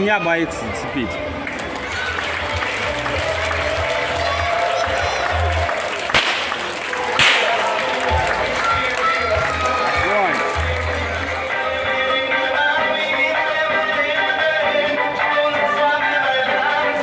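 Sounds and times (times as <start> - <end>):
background music: 0.0 - 17.0
whip cracks: 6.1 - 7.8.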